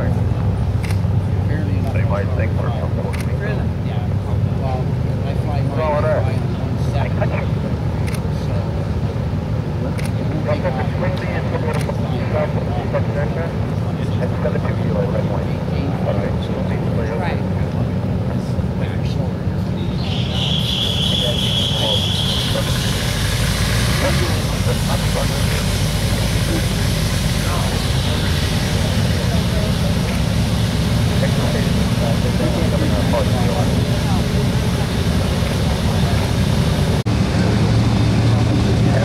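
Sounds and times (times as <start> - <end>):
seaplane engines rumbling: 0.0 - 39.0
voices: 0.0 - 39.0.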